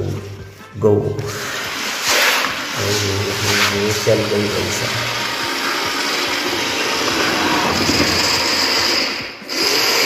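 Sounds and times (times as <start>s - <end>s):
toy motor and gears whirring: 1.8s - 10.0s
thin high whine: 2.8s - 9.4s.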